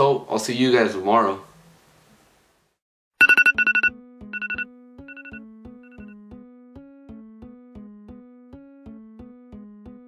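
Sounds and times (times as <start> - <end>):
high electronic beeps: 3.2 - 6.1.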